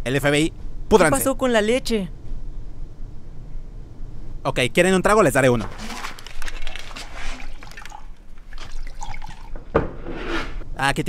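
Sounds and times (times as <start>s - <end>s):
liquid pouring into mugs: 5.6s - 9.7s.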